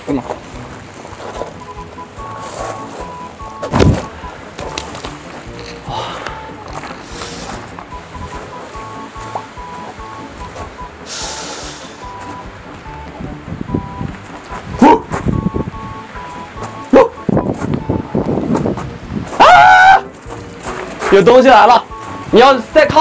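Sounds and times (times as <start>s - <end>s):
eerie background music: 0.5s - 15.0s
hiss: 11.0s - 12.1s
man screaming: 19.4s - 20.1s.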